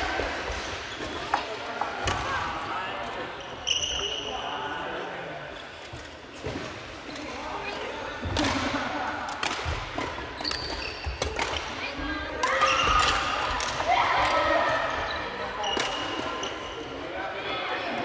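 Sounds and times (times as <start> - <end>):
players' voices: 0.0 - 18.0
sneakers squeaking on wooden floor: 3.3 - 4.5, 10.3 - 13.1, 14.7 - 16.9
rackets striking shuttlecocks: 9.3 - 11.8, 12.4 - 14.4, 15.7 - 16.3.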